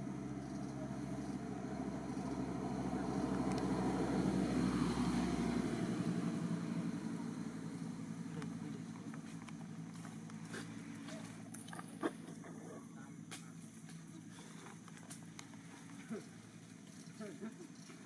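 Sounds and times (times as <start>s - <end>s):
vehicle engine humming past: 0.0s - 18.0s.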